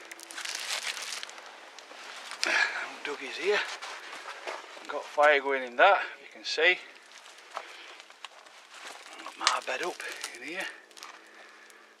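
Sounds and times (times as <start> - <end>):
tarp rustling and crinkling: 0.0 - 12.0.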